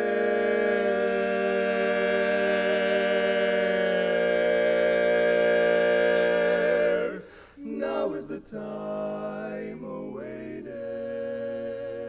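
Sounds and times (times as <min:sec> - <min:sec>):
men singing a cappella chord: 0:00.0 - 0:12.0.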